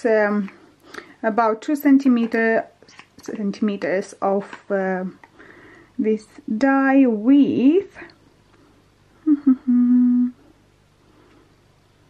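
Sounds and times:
woman humming: 9.2 - 10.5.

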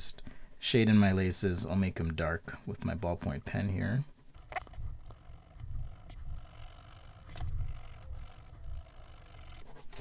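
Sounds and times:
dull low rumble: 4.4 - 9.7
ballpoint pen scratching on paper: 4.4 - 10.0.

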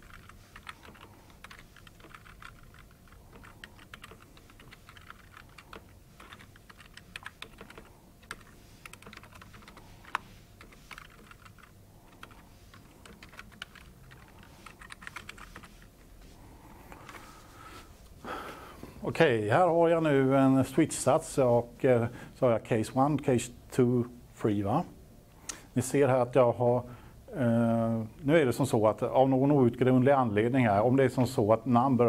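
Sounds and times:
typing on computer keyboard: 0.0 - 15.9.

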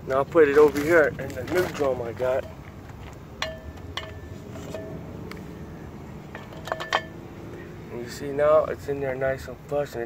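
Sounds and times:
brake shoe clinking on metal drum: 1.7 - 5.6, 6.2 - 7.2.

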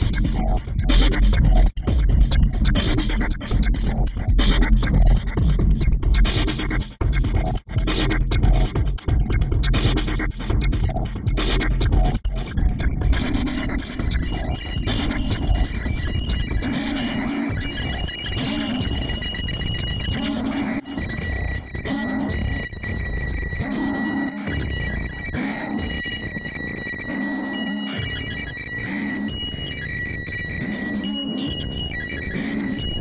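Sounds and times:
low pulsing beat: 0.0 - 20.2
harsh electronic noise and clicks: 0.0 - 33.0.

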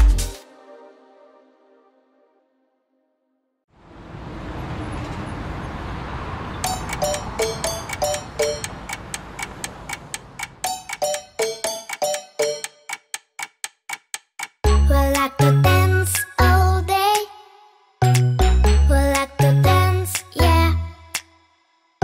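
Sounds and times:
clock-like ticking: 6.6 - 15.6.

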